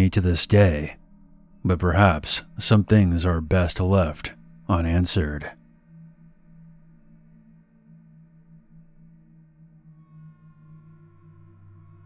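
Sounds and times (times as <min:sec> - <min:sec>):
ambient drone music: 0:00.0 - 0:12.0.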